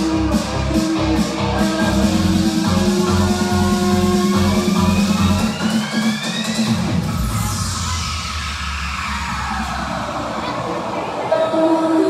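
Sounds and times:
rising synth sweep: 0.0 - 11.5
dance music with pulsing bass: 0.0 - 12.0.

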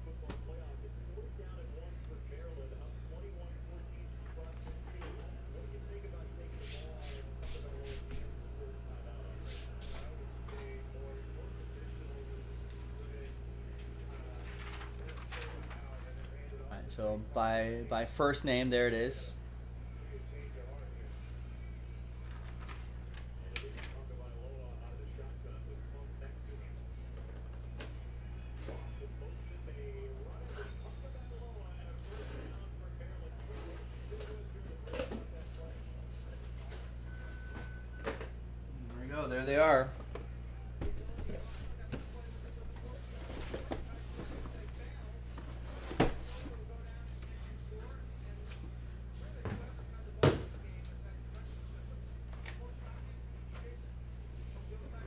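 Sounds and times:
low electrical hum: 0.0 - 55.0
paper rustling: 14.2 - 16.3.

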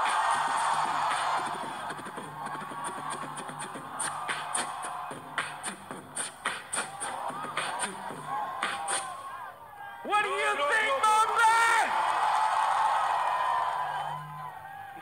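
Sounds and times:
dance track with sharp beat: 0.0 - 9.2
audience cheering and screaming: 0.0 - 15.0
loud whooping shouts: 0.0 - 15.0.

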